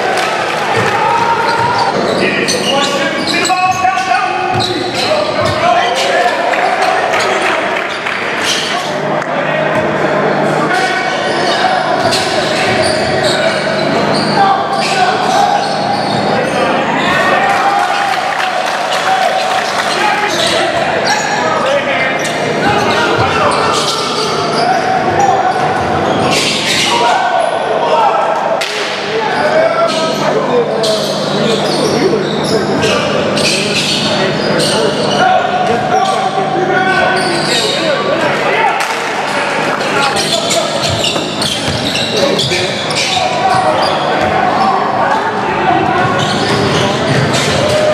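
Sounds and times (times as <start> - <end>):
voices echoing in gym: 0.0 - 47.9
basketball bouncing: 40.9 - 42.0.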